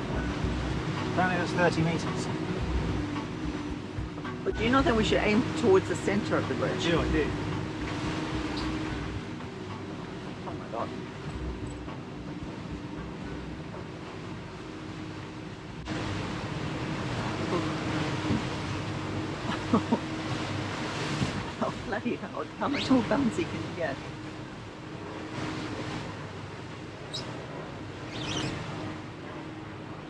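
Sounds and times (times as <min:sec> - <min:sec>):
boat engine drone: 0:00.0 - 0:30.0
wind: 0:00.0 - 0:30.0.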